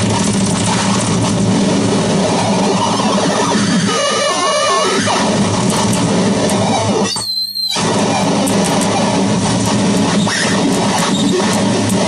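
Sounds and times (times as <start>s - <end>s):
wall of distorted noise: 0.0s - 12.0s.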